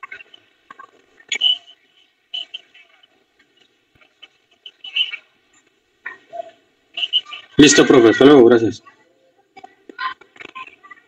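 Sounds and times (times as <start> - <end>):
faint broken voices over call: 0.0 - 11.0.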